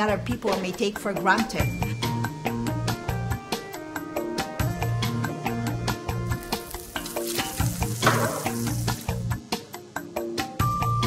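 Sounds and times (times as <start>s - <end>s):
background music: 0.0s - 11.0s
egg sizzling in a pan: 6.2s - 9.4s.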